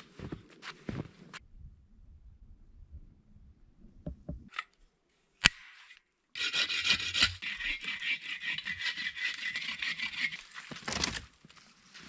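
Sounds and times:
bow saw rasping through wood: 6.4 - 10.7.

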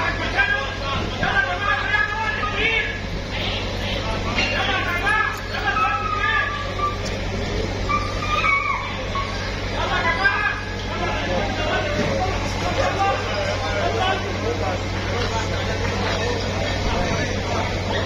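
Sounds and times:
crowd talking and calling out: 0.0 - 18.0
excavator engine rumbling: 0.0 - 18.0.

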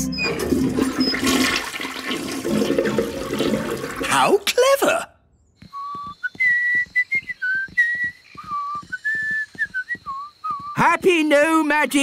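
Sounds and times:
toilet flushing: 0.0 - 4.4.

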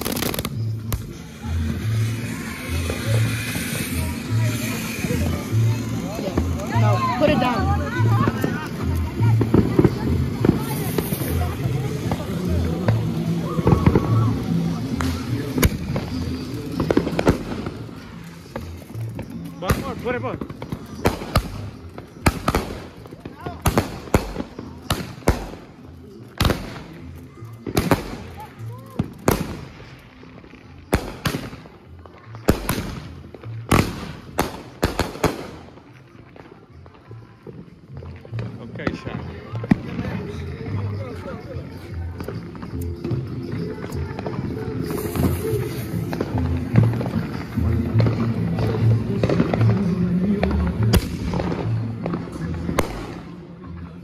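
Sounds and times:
fireworks bangs: 0.0 - 25.8, 26.4 - 40.8, 42.2 - 53.4.

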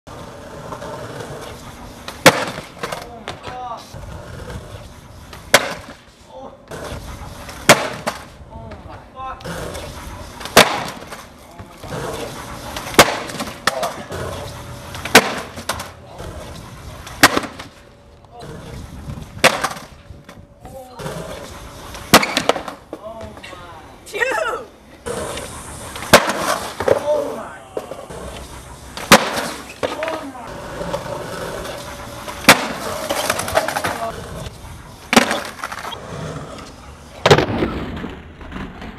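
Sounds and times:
skateboard clattering on concrete: 0.1 - 6.0, 6.7 - 8.8, 9.4 - 17.8, 19.4 - 19.9, 21.0 - 23.6, 25.2 - 28.4, 29.0 - 34.5, 35.1 - 38.9
skateboard wheels rolling on concrete: 0.1 - 38.9
skateboard tail popping: 0.6 - 3.6, 4.5 - 6.0, 6.7 - 8.3, 9.4 - 15.9, 16.5 - 17.8, 19.3 - 19.9, 21.3 - 23.0, 25.1 - 27.1, 27.8 - 38.9.

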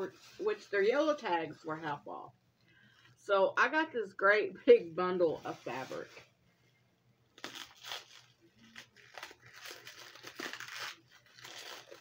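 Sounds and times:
plastic wrapping crinkling and tearing: 7.3 - 12.0.

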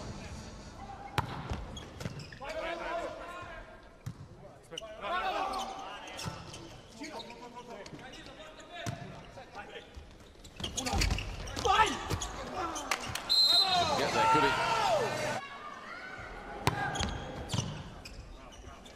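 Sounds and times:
voices in a large hall: 0.0 - 18.9.

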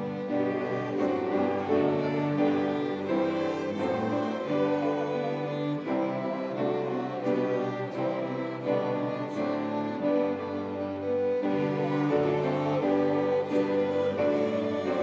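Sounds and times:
string ensemble bowed chords: 0.0 - 15.0.

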